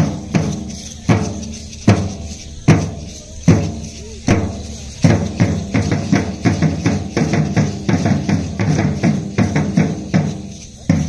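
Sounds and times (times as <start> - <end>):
drum beating quick rhythm: 0.0 - 11.0
hand rattles shaking: 0.0 - 11.0.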